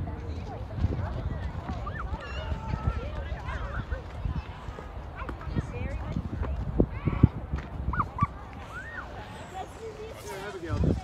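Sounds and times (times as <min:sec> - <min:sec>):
footsteps on packed snow: 0:08.4 - 0:11.0.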